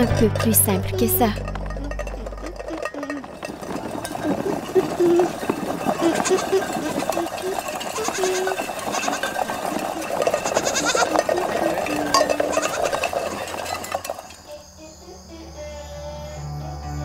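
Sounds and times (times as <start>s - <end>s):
goat kid bleating: 6.0s - 9.4s, 10.4s - 11.3s, 12.1s - 13.0s.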